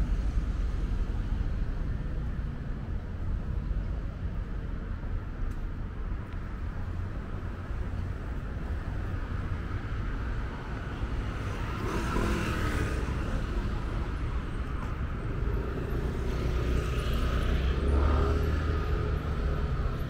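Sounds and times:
vehicles passing: 0.0s - 20.0s.

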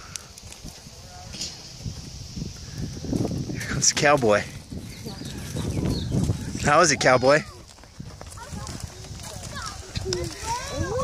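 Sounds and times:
pony hooves on wood chips: 0.0s - 11.0s.

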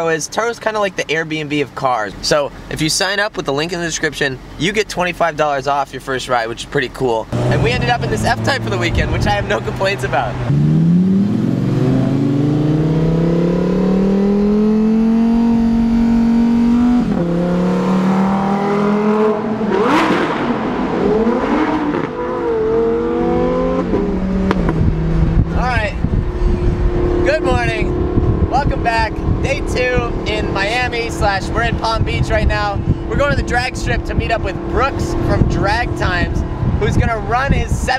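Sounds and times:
sports car engine accelerating: 7.3s - 37.1s.

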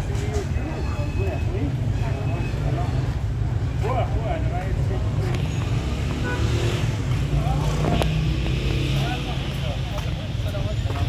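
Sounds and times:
passers-by talking: 0.0s - 11.0s
traffic rumble: 0.0s - 11.0s.

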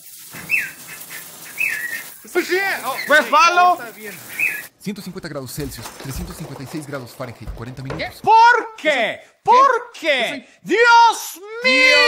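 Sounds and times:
cockatiel whistling: 1.6s - 2.1s, 4.3s - 4.7s.

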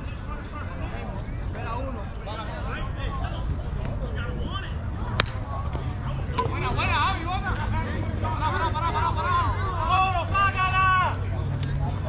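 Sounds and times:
players' voices and shouts: 0.0s - 12.0s
bat cracking against ball: 5.1s - 5.5s.

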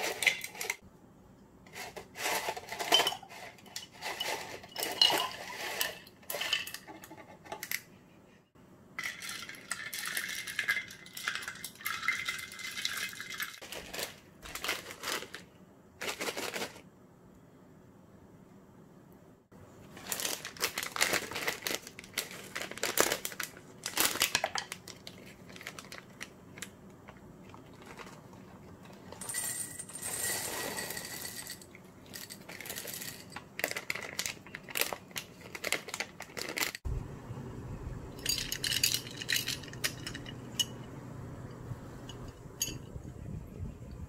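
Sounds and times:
plastic bag crinkling and tearing: 13.6s - 16.8s, 19.9s - 26.7s, 33.6s - 36.8s
low steady hum: 16.8s - 44.0s
snack balls rattling into metal bowl: 29.0s - 36.8s.

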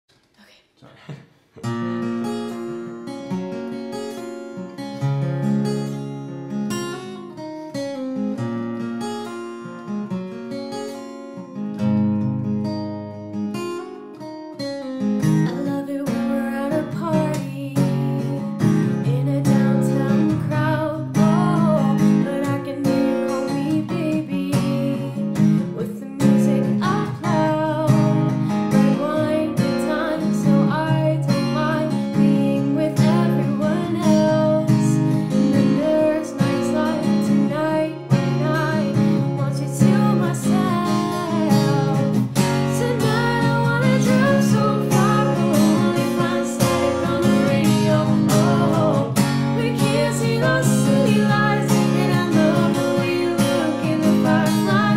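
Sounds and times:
acoustic guitar strumming: 1.5s - 54.9s
person singing: 15.5s - 54.9s.

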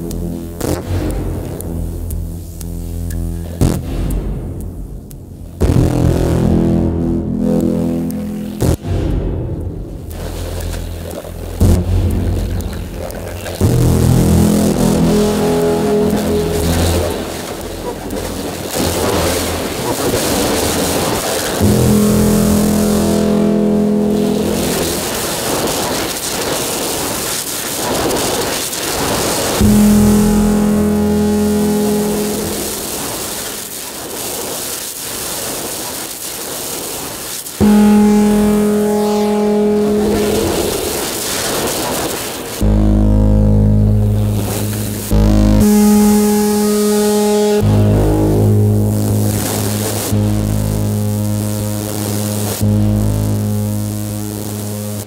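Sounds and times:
steady droning electronic tones: 0.0s - 34.9s, 37.5s - 55.0s
hissing noisy electronic textures: 0.0s - 55.0s.

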